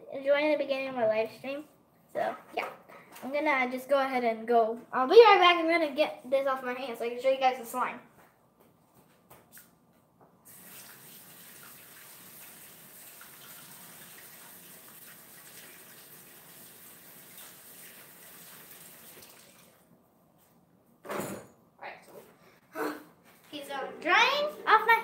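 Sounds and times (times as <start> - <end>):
water running from tap: 10.5 - 19.9.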